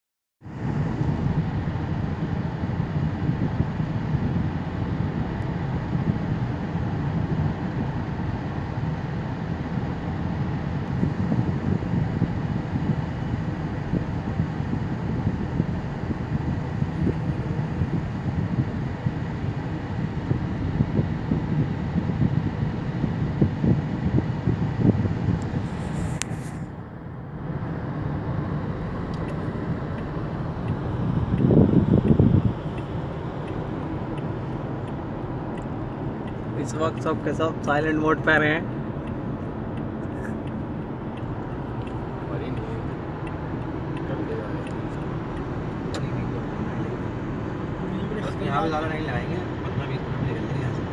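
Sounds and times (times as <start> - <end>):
road and engine noise inside car: 0.4 - 50.9.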